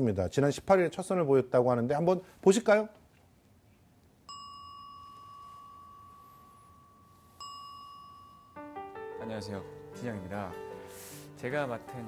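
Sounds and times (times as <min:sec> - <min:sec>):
wind bell ringing: 0:04.3 - 0:09.6.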